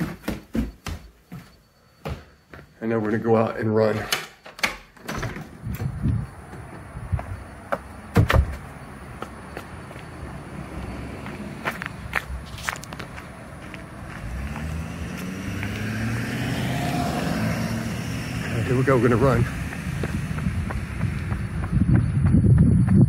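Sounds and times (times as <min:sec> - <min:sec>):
footsteps on pavement: 0:00.0 - 0:03.3, 0:05.8 - 0:15.9, 0:18.4 - 0:23.0
door clicks and thud: 0:04.0 - 0:06.0, 0:08.1 - 0:08.6
truck engine hum: 0:05.5 - 0:23.0.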